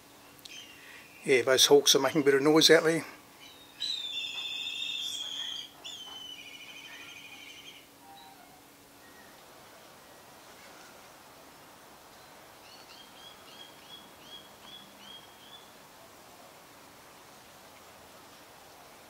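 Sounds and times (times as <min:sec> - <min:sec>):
hawk wavering whistles: 0:03.6 - 0:09.4.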